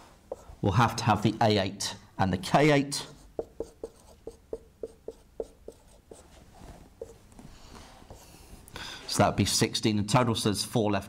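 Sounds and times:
marker writing on whiteboard: 0:00.0 - 0:00.8, 0:03.0 - 0:06.4, 0:07.0 - 0:07.2, 0:08.0 - 0:08.4
marker rubbing: 0:00.3 - 0:00.6, 0:03.0 - 0:07.2, 0:08.1 - 0:08.4.

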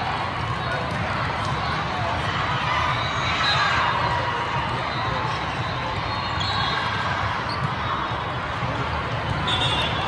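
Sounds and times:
echoing din of indoor hall: 0:00.0 - 0:10.0.

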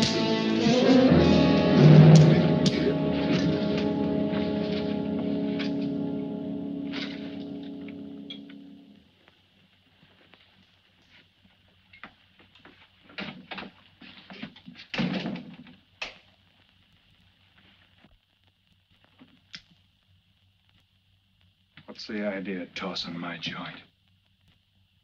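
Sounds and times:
film score music: 0:00.0 - 0:09.0.

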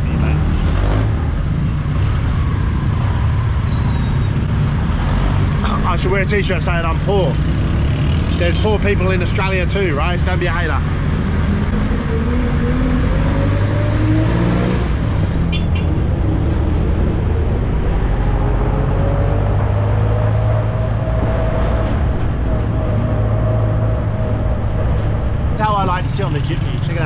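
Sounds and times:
diesel engine accelerating: 0:00.0 - 0:27.0
road noise: 0:00.0 - 0:27.0.

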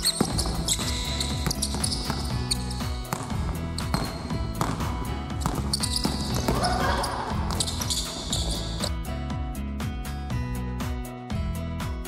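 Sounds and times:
basketball dribbling on hardwood: 0:00.0 - 0:08.9
background music: 0:00.0 - 0:12.0.

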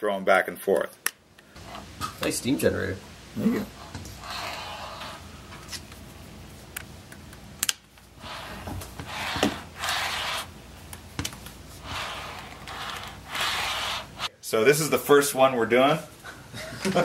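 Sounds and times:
sharp plastic clicks: 0:06.8 - 0:07.8.

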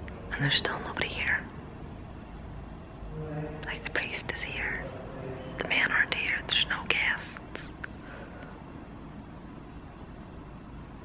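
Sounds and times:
woman whispering: 0:00.3 - 0:01.6, 0:03.6 - 0:04.9, 0:05.6 - 0:07.8.

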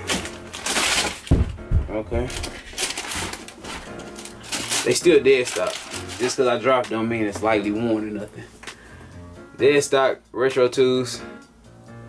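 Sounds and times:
tissue paper rustling: 0:00.0 - 0:07.7
quiet background music: 0:00.0 - 0:12.0.

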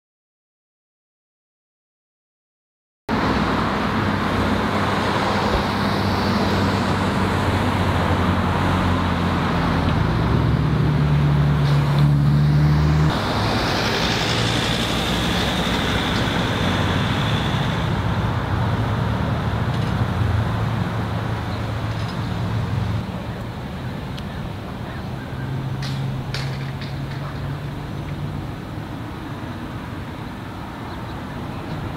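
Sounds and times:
street traffic: 0:03.1 - 0:31.9
vehicle engines idling: 0:03.3 - 0:12.5, 0:13.1 - 0:31.9.

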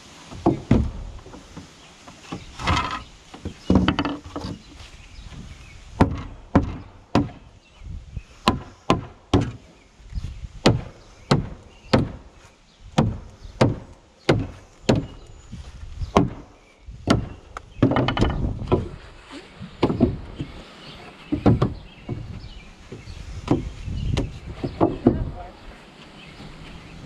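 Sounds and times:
sledgehammer striking wooden board: 0:00.3 - 0:01.1, 0:06.0 - 0:07.4, 0:08.4 - 0:09.6, 0:10.6 - 0:12.3, 0:13.0 - 0:15.2, 0:16.1 - 0:19.0, 0:19.8 - 0:20.5, 0:21.3 - 0:22.3
wooden knocks and scrapes: 0:00.3 - 0:07.4, 0:11.3 - 0:25.4.

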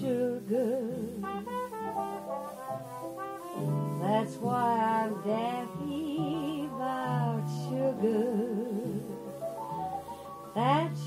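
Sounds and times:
jazz cornet fill: 0:00.3 - 0:08.1.

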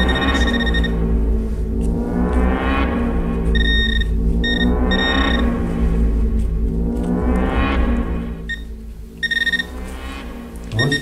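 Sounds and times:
metal detector beeping: 0:00.0 - 0:01.0, 0:03.6 - 0:05.4, 0:08.5 - 0:09.8, 0:10.7 - 0:11.0
background music with drone: 0:00.0 - 0:11.0.

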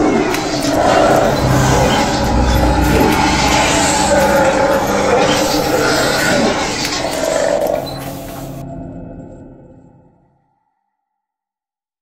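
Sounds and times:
rumbling horror roar: 0:00.0 - 0:08.7.

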